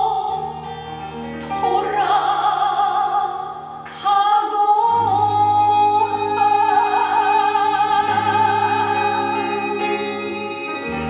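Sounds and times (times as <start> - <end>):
woman singing into microphone: 0.0 - 11.0
instrumental accompaniment: 4.9 - 11.0.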